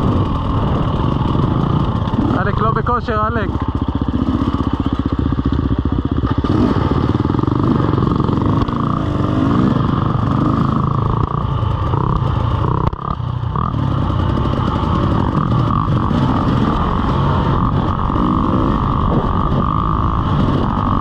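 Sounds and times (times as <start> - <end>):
dirt bike engine revving: 0.0 - 21.0.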